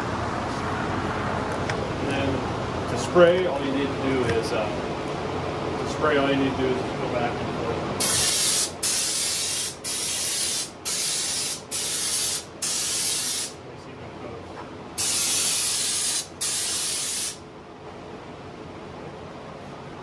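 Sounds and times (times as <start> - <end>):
spray gun hissing bursts: 8.0 - 13.6, 15.0 - 17.4.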